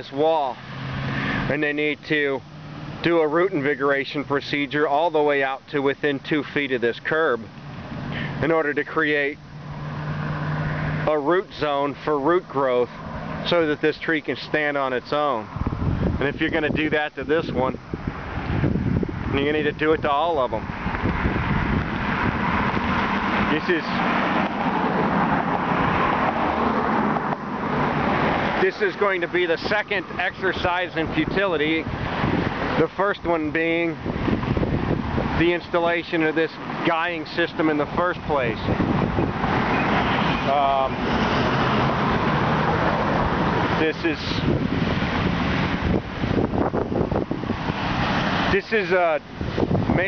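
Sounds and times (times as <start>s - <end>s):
cars passing on road: 0.0s - 50.0s.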